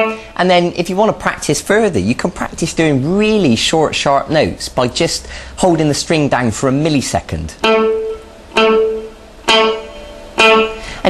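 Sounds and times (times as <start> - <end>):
staccato electric guitar notes: 0.0 - 0.4, 4.4 - 11.0.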